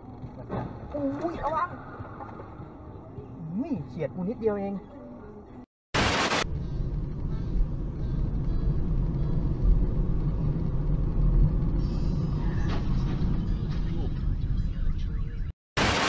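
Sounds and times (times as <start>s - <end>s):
car engine and road noise: 0.0s - 15.5s
static hiss: 6.0s - 6.4s.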